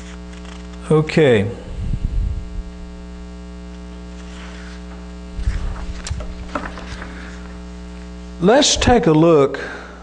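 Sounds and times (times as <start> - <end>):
electrical mains hum: 0.0 - 10.0
microphone handling bumps: 1.6 - 4.2, 4.8 - 9.2.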